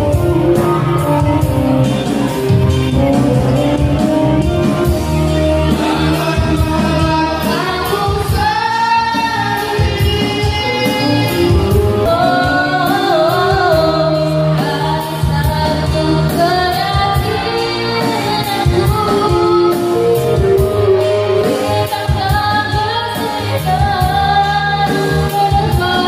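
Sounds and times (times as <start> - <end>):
person singing over band: 2.4 - 26.0.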